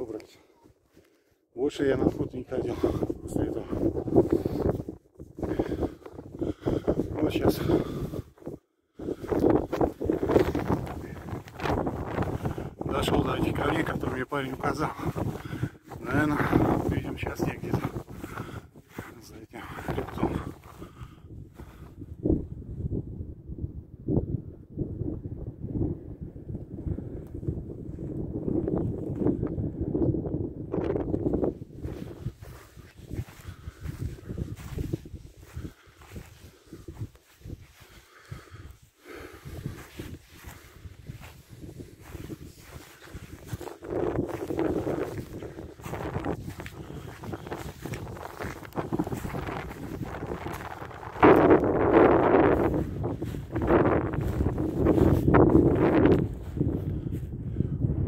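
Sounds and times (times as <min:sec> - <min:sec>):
wind buffeting microphone: 0:01.8 - 0:58.0
footsteps on stony ground: 0:09.2 - 0:21.0, 0:31.3 - 0:56.7.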